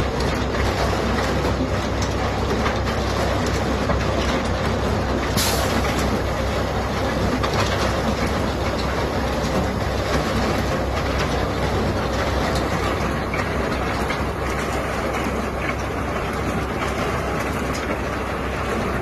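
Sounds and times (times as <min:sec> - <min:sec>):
concrete mixer machinery rattling: 0:00.0 - 0:19.0.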